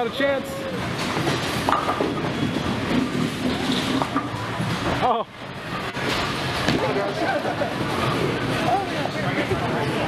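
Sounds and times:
busy bowling alley noise: 0.0s - 10.0s.

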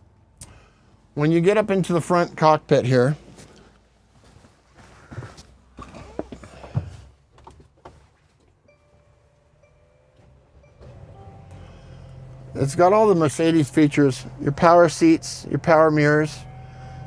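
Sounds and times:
low ignition hum: 0.0s - 17.0s
thumps of climbing into van: 5.1s - 8.1s.

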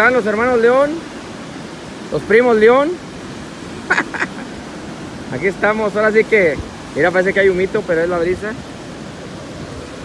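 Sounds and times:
ocean surf washing up: 0.0s - 10.0s.

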